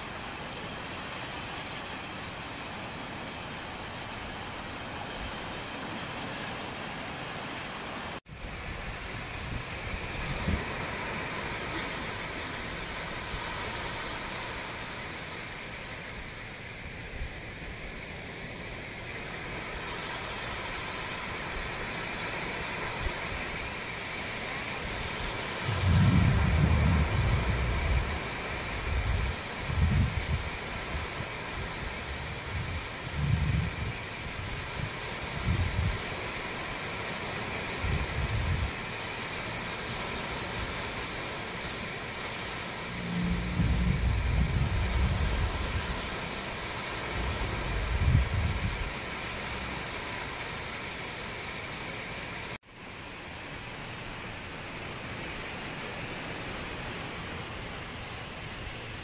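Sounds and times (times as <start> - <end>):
sea waves washing onto shore: 0.0 - 59.0
wind gusting on microphone: 8.3 - 15.0, 22.8 - 50.3.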